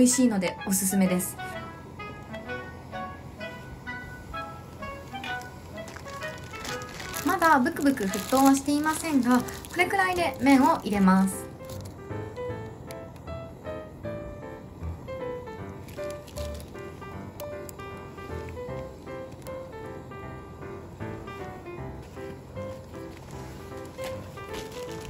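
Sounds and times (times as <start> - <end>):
light background music: 0.0 - 25.0.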